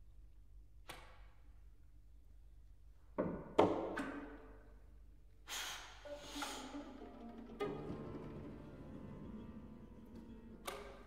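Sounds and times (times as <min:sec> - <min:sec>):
chamber music ensemble: 0:06.0 - 0:11.0.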